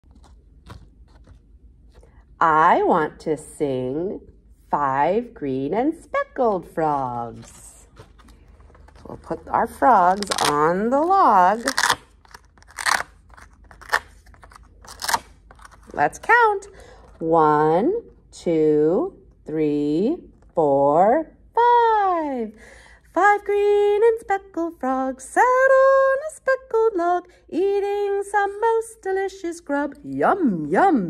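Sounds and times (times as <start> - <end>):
velcro scratchy rasps: 0.0 - 2.1, 7.8 - 16.0
paper board rustling: 0.0 - 2.3, 6.8 - 17.0.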